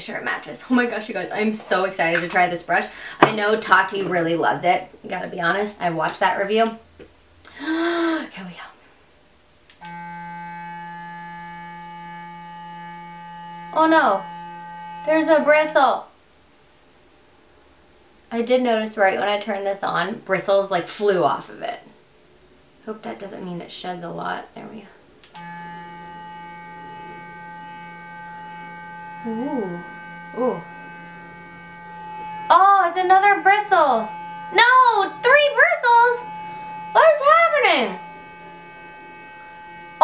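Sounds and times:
face brush electric hum: 0.0 - 6.8, 9.7 - 16.2, 22.9 - 40.0.

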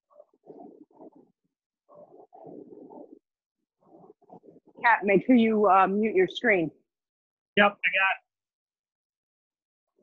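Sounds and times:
muffled rumbling through call microphone: 0.1 - 6.5.

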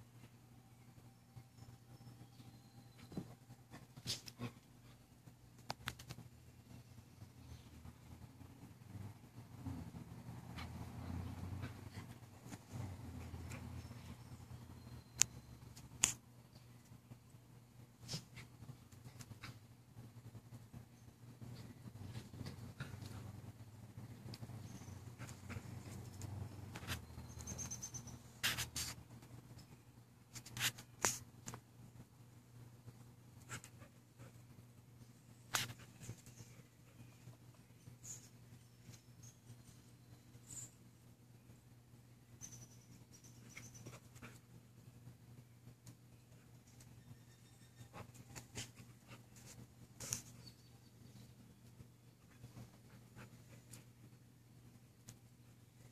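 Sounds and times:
dogs playing: 2.1 - 29.6, 32.9 - 40.4, 42.4 - 55.9.

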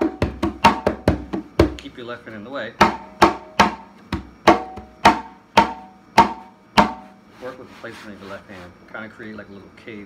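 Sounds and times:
conga struck by hand: 0.0 - 1.8, 2.8 - 7.2.

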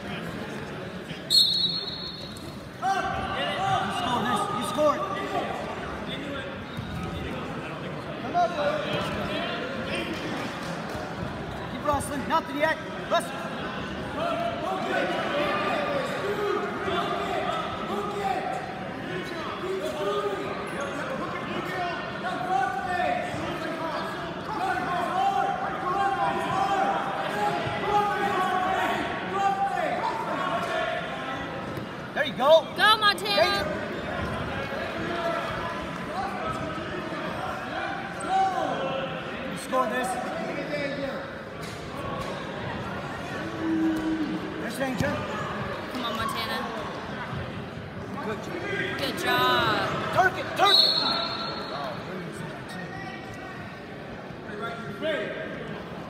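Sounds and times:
coaches and spectators calling out: 0.0 - 10.4, 11.5 - 56.0.

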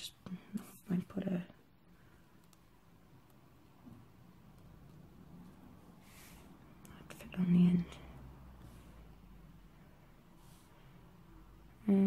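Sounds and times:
faint clicks: 2.4 - 3.4
soft breath: 6.0 - 6.9, 7.8 - 11.6.

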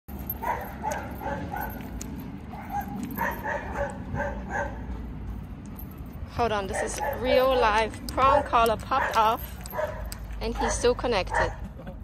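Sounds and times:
dog barking: 0.4 - 1.9, 2.5 - 4.9, 6.7 - 7.4, 8.9 - 11.6.

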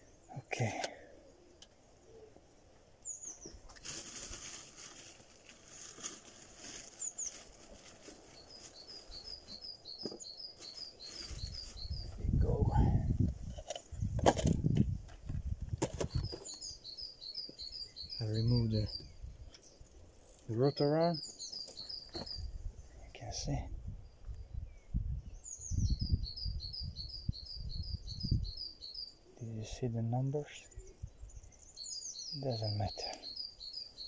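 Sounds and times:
birds chirping: 0.0 - 34.0.

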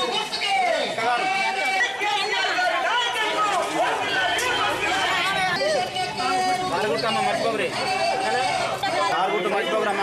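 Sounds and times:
overlapping voices talking: 0.0 - 10.0.

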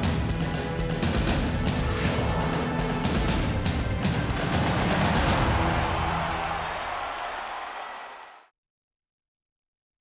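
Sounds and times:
tv theme music: 0.0 - 8.1.

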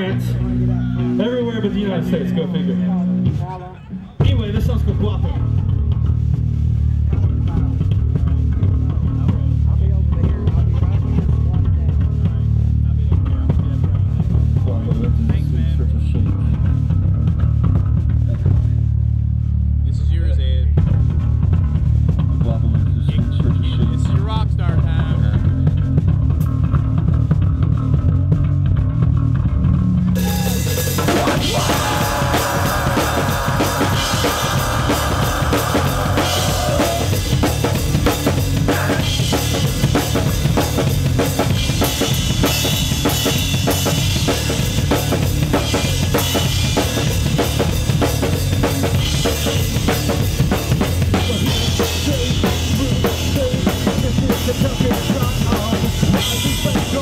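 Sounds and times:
heavy metal band playing live: 0.0 - 3.6, 4.2 - 19.0, 20.7 - 57.0
bass guitar: 0.0 - 57.0
drum kit: 4.2 - 19.3, 20.6 - 57.0
cymbals: 30.2 - 53.3.

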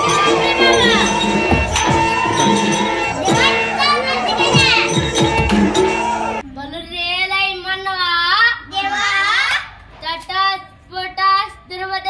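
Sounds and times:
children calling out: 0.0 - 6.4
low drum beats: 0.0 - 6.4
music with steady drone: 0.0 - 6.4.

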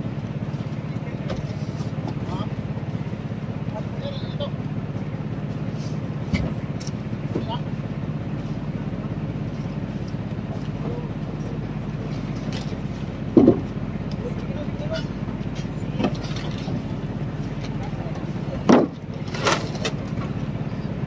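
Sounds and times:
engine humming: 0.0 - 21.0.

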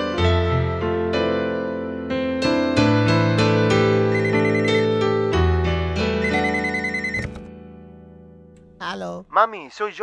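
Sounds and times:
telephone ringing: 4.1 - 5.0, 6.2 - 7.5.

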